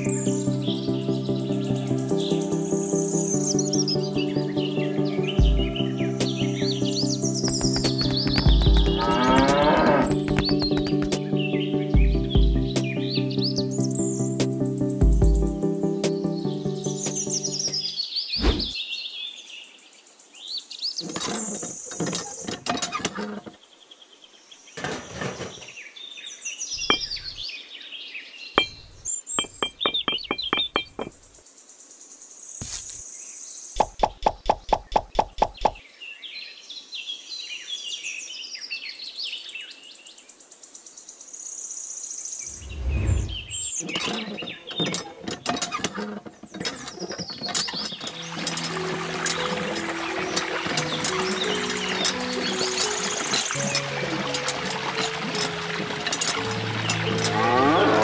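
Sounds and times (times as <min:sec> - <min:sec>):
birds chirping: 0:00.0 - 0:36.9, 0:42.2 - 0:58.0
quick even taps: 0:07.4 - 0:09.0, 0:10.1 - 0:11.3.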